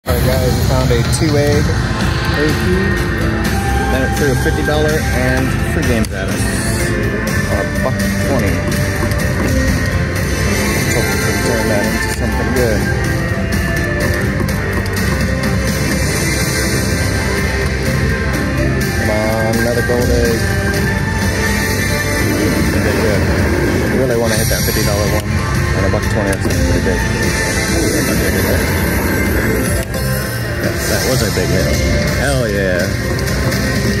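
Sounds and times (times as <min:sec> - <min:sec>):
slot machine rock music: 0:00.1 - 0:34.0.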